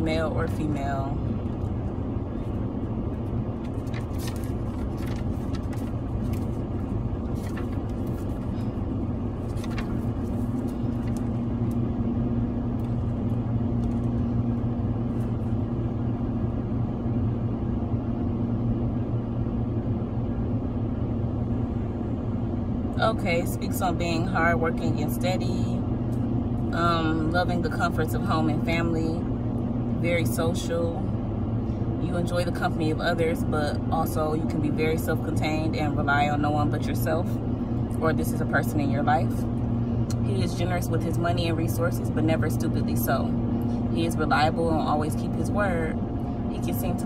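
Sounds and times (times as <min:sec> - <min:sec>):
car engine idling: 0:00.0 - 0:47.0.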